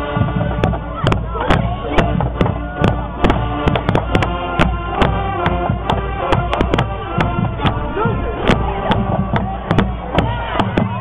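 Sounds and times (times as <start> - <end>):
held wind notes: 0.0 - 11.0
marching band playing: 0.0 - 11.0.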